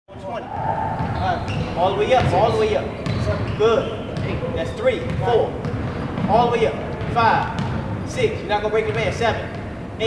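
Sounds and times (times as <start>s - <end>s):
echoing voices: 0.1s - 9.9s
basketballs bouncing on wood floor: 1.0s - 9.7s.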